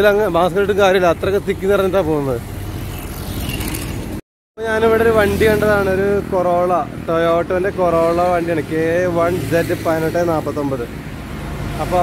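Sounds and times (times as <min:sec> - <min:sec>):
man's voice: 0:00.0 - 0:02.4, 0:04.6 - 0:10.9
passing motorbikes and cars: 0:00.0 - 0:12.0.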